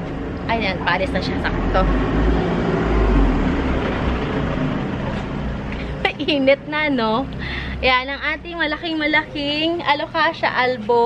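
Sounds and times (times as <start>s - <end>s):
van engine running: 0.0s - 11.0s.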